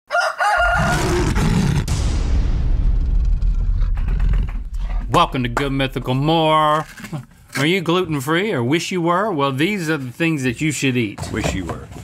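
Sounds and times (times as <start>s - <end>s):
rooster crowing: 0.1s - 1.4s
low steady rumble: 2.4s - 7.6s.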